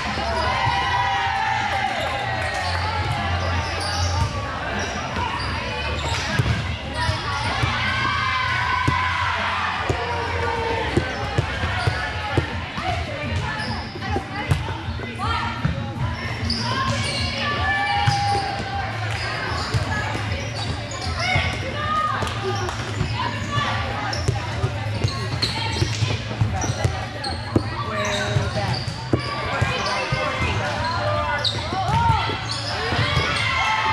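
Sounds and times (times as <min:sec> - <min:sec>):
players calling: 0:00.0 - 0:15.4
spectator chatter: 0:00.0 - 0:33.9.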